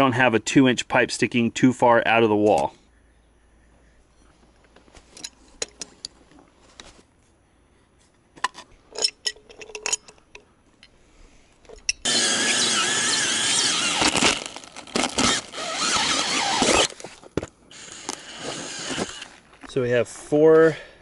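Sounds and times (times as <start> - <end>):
cordless drill hole saw whine: 12.0 - 17.0, 17.7 - 19.4.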